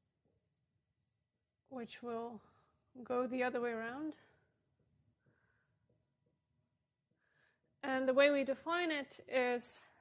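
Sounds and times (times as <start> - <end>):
marker scratching on whiteboard: 0.0 - 8.6.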